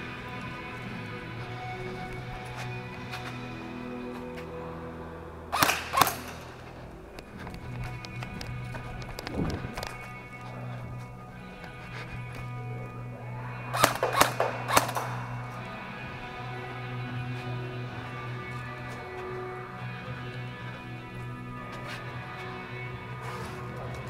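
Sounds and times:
background music: 0:00.0 - 0:24.0
airsoft gun shots: 0:05.5 - 0:06.5, 0:13.8 - 0:15.4.

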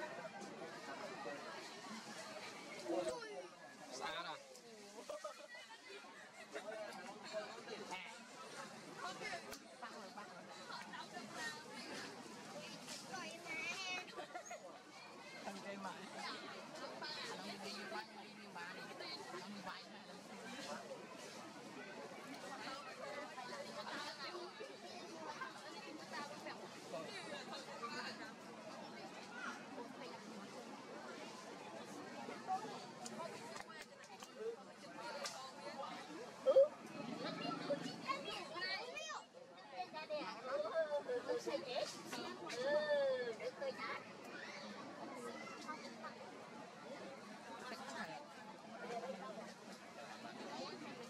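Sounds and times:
babble of distant voices: 0:00.0 - 0:51.0
indistinct voices chattering: 0:34.4 - 0:51.0.

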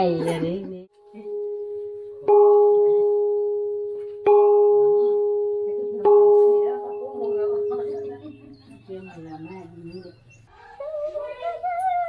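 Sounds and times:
hand-held gong struck: 0:01.0 - 0:08.1.

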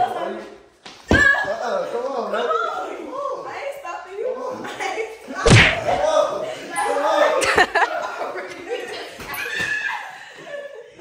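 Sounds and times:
pillow thud: 0:05.5 - 0:06.1.

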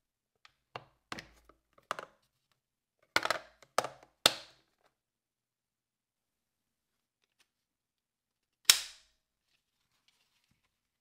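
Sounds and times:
sharp plastic snap: 0:08.6 - 0:09.1.

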